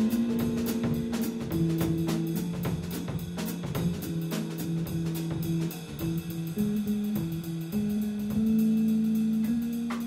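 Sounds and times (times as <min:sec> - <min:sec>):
drum kit keeping time: 0:00.0 - 0:10.0
electric bass guitar: 0:00.0 - 0:10.0.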